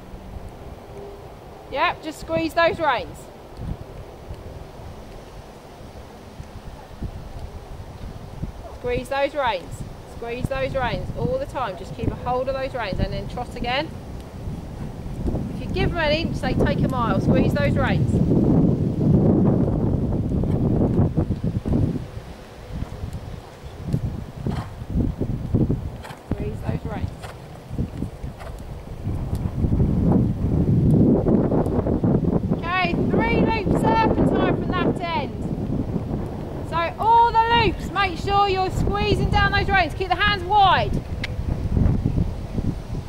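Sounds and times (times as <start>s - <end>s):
wind buffeting microphone: 0.0s - 43.0s
horse hoofbeats on sand: 20.0s - 30.5s.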